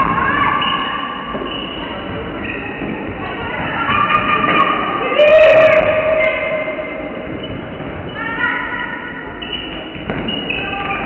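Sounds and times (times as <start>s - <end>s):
sports hall game din: 0.0s - 11.0s.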